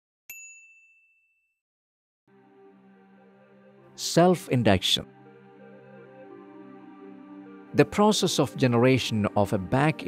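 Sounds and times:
bell-like ding: 0.3s - 1.6s.

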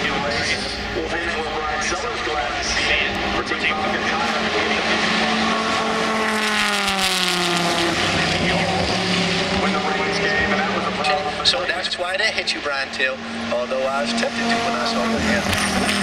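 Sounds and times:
race car engine running: 0.0s - 16.0s.

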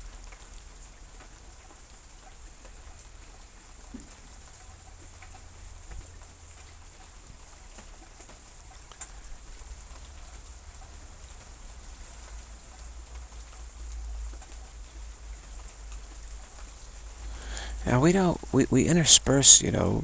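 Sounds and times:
light rain pattering: 0.0s - 20.0s.

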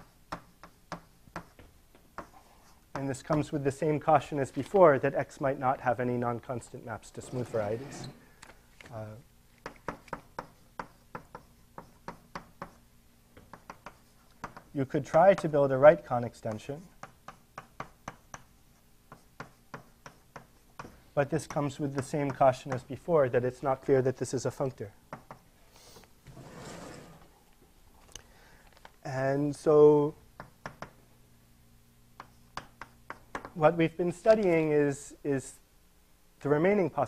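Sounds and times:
chalk tapping on blackboard: 0.0s - 3.5s, 9.6s - 12.8s, 13.4s - 15.5s, 16.5s - 22.9s, 25.1s - 25.5s, 30.4s - 31.0s, 32.2s - 33.6s.

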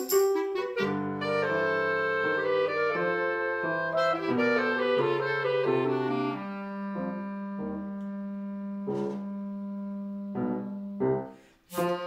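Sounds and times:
held low woodwind note: 0.4s - 12.0s.

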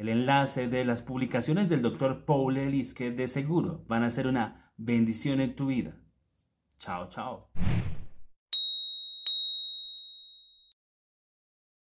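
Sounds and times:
high bell-like ding: 8.5s - 10.8s.

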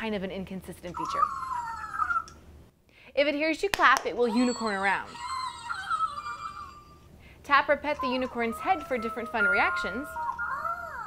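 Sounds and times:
toy warbling electronic sound: 4.3s - 7.0s, 8.0s - 11.0s.

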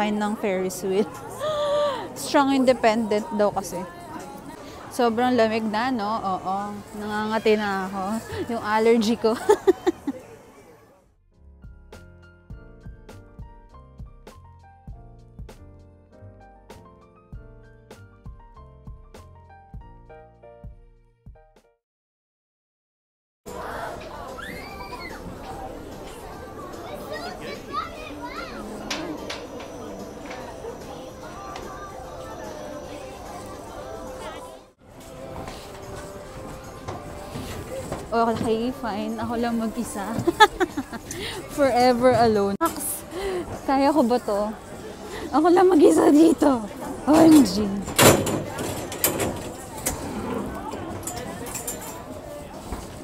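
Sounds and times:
faint indistinct voices: 0.0s - 11.1s, 23.5s - 53.0s
children's high-pitched voices: 23.5s - 29.2s, 30.6s - 34.6s
excited squeals: 24.3s - 25.2s.

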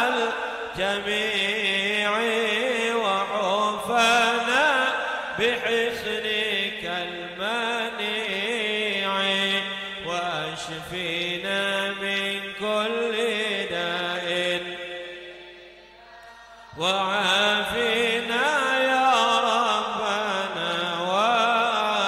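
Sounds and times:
man chanting into a microphone: 0.0s - 15.8s, 16.5s - 22.0s.

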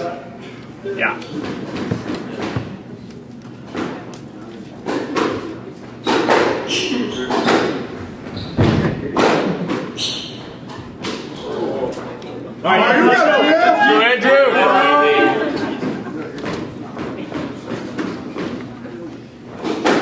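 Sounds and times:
squash ball hits echoing: 4.8s - 7.9s, 8.6s - 11.4s, 19.6s - 20.0s.

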